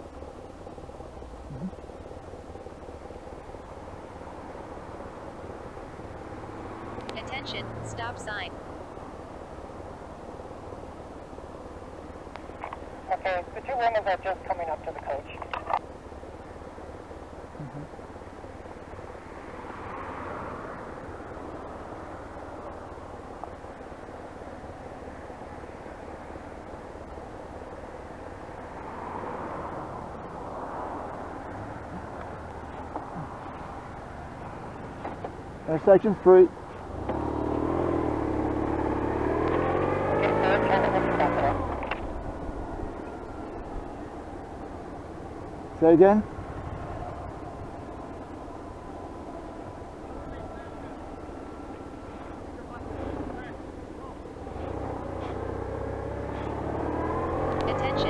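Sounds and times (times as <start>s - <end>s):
motorcycle engine idling: 0.0s - 56.6s
cars passing: 0.0s - 58.0s
wavering voice: 1.4s - 1.8s, 17.6s - 17.9s.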